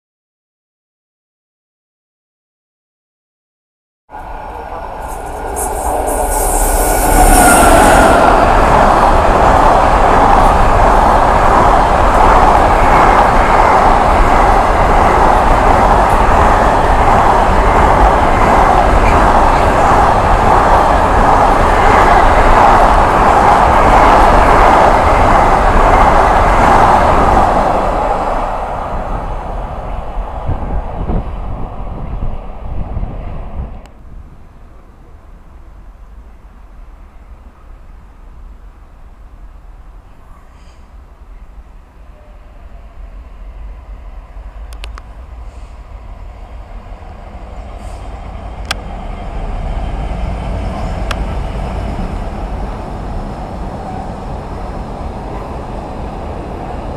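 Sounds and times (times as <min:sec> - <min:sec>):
freight train wheels rumbling: 0:04.1 - 0:56.9.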